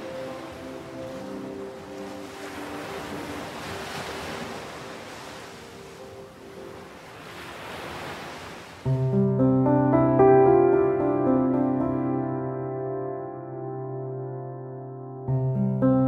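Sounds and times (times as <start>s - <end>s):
ocean surf washing in: 0.0s - 14.2s.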